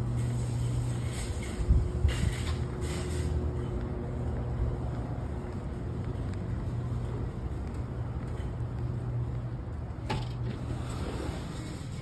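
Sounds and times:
road traffic rumble: 0.0s - 12.0s
footsteps on concrete: 0.1s - 11.0s.

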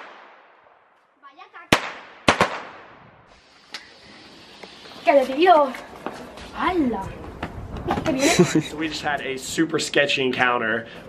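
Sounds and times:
firecrackers exploding: 1.7s - 5.5s.

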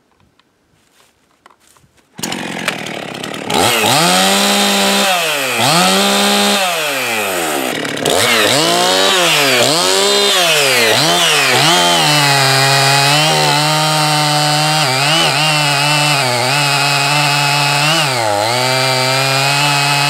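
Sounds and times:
chainsaw revving: 2.2s - 20.0s.

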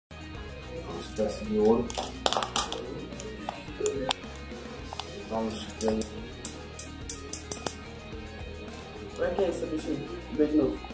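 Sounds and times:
background music: 0.1s - 10.9s.

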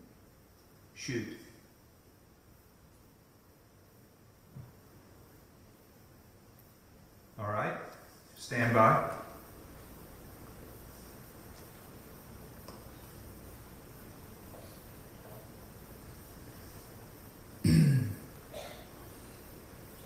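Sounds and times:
faint steady hiss: 0.0s - 20.0s
person coughing or speaking: 17.6s - 18.9s.

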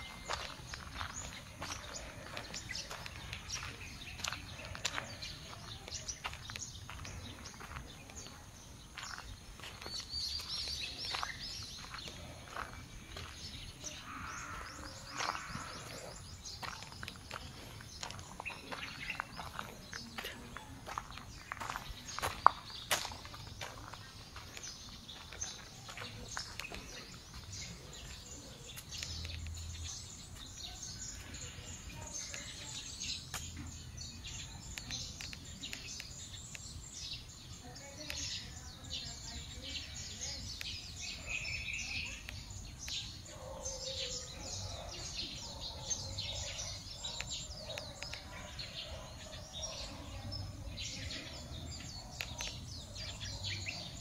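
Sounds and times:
birds chirping: 0.0s - 54.0s.

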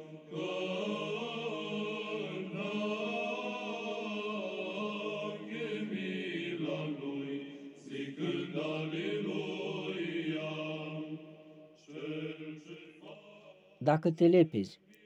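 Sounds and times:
slow vocal chant: 0.0s - 13.8s.

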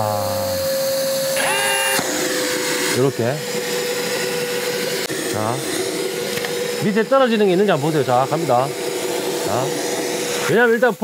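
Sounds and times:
vacuum whine: 0.0s - 11.0s.

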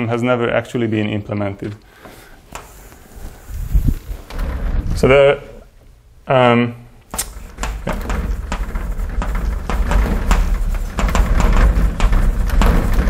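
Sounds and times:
dull knock of board: 7.5s - 13.0s.

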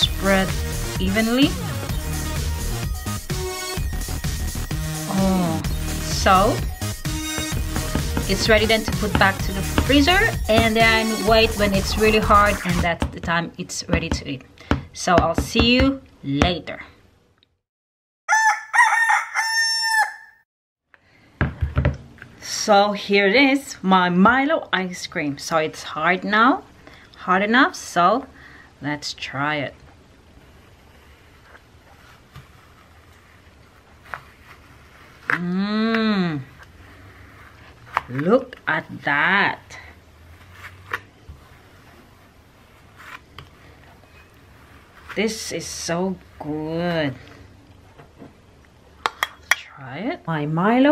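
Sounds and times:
rooster crowing: 18.3s - 20.4s
ice cream scoop scraping: 30.4s - 35.4s, 40.2s - 45.7s.

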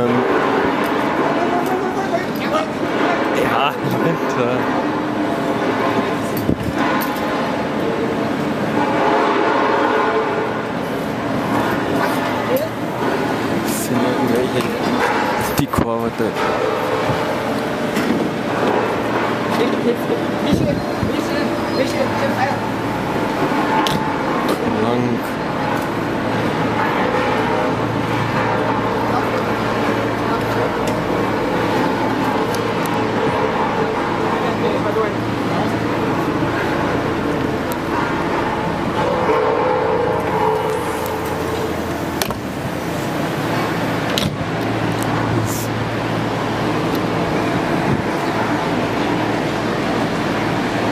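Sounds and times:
crowd talking indistinctly: 0.0s - 50.9s.

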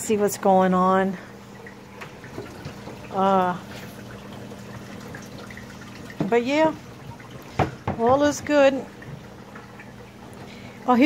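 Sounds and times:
water trickling and bubbling: 0.0s - 11.0s.

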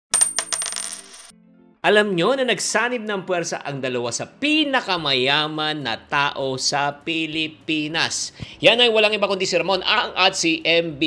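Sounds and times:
coin clinking and spinning: 0.1s - 1.3s.

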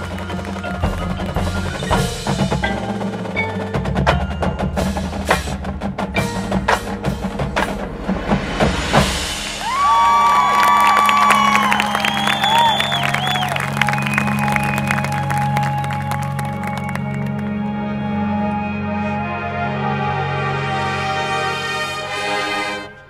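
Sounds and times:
marching band drums and mallets: 0.0s - 10.0s.

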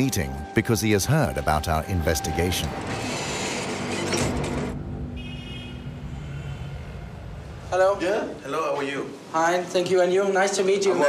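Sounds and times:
lift doors sliding open: 2.8s - 4.8s.

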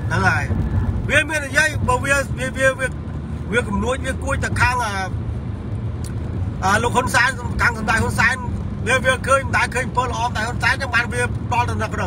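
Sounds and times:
man talking: 0.0s - 5.2s, 6.6s - 12.0s
low rumble inside car cabin: 0.0s - 12.0s.

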